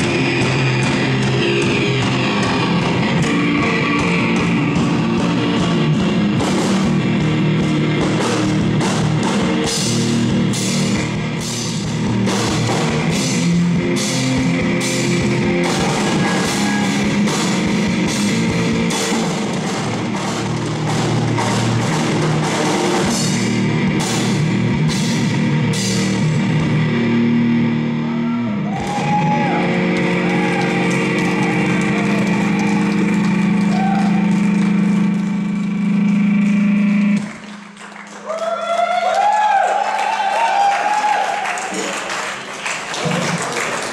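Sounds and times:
live rock band playing: 0.0 - 38.1
droning guitar and bass notes: 0.0 - 38.3
voices shouting and whooping: 28.0 - 34.3, 38.2 - 41.6.

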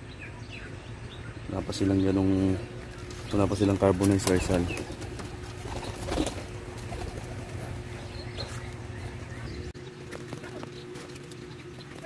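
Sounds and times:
steady low hum: 0.0 - 12.0
dove cooing: 2.4 - 12.0.

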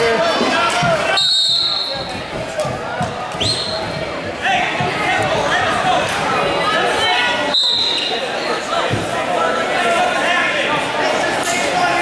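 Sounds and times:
crowd chatter echoing: 0.0 - 12.0
referee's whistle blast: 1.1 - 2.0, 7.5 - 8.1.

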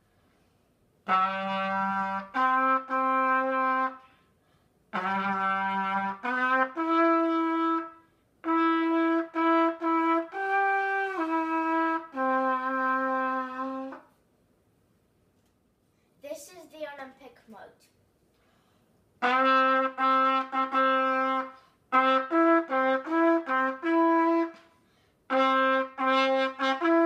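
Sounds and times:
trumpet playing slow tune: 1.0 - 4.2, 4.9 - 14.2, 19.2 - 27.0.

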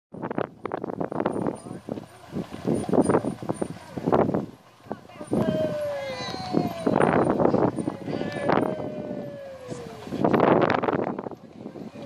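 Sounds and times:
people talking: 1.2 - 12.0
tone sliding down in pitch: 5.3 - 10.8.

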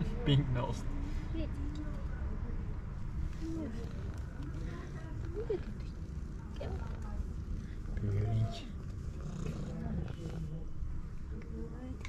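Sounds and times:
cat purring: 3.1 - 10.8.

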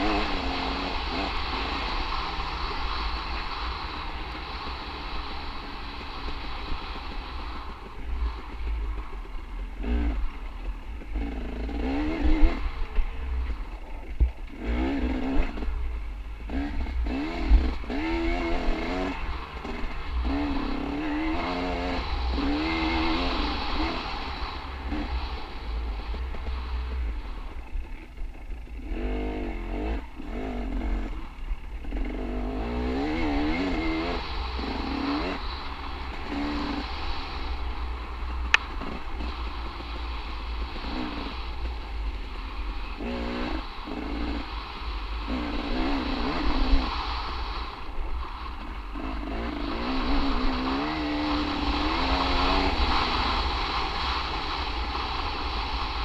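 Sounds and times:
dirt bike engine revving: 0.0 - 9.0, 9.6 - 56.0
wind and tyre noise: 0.0 - 56.0.

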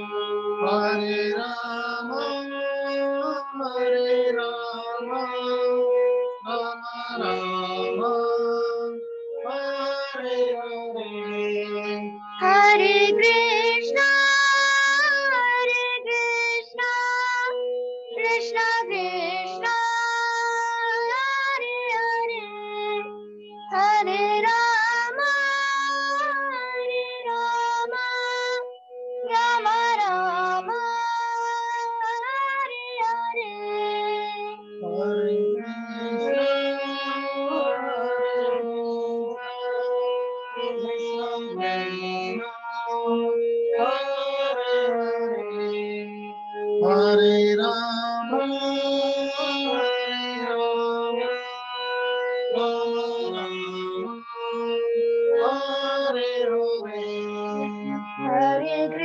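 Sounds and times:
harmonium playing slow melody: 0.0 - 59.0
girl singing: 12.4 - 22.9, 23.6 - 28.7, 29.3 - 34.6, 58.2 - 59.0.

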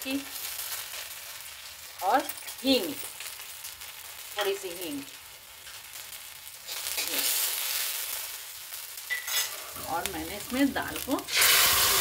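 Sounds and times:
spices sizzling in hot ghee: 0.0 - 12.0.

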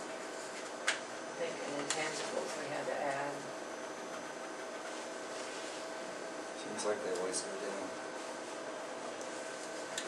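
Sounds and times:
room hum with faint tones: 0.0 - 10.0.

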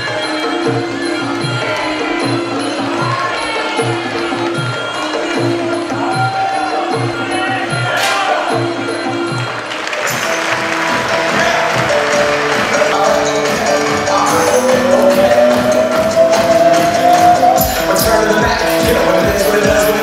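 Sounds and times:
background music with steady beat: 0.0 - 20.0.

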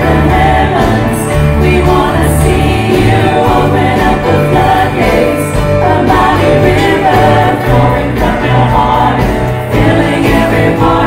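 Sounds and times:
choir singing gospel song: 0.0 - 11.0
live church band: 0.0 - 11.0
steady bass notes: 0.0 - 11.0.

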